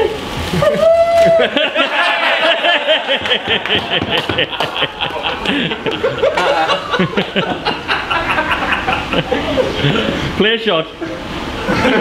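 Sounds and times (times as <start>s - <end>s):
men laughing: 0.5s - 10.4s, 11.0s - 12.0s.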